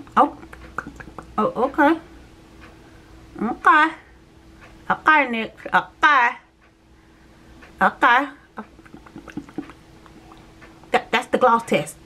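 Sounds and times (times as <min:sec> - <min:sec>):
soft wet lip smacks: 0:08.6 - 0:10.9.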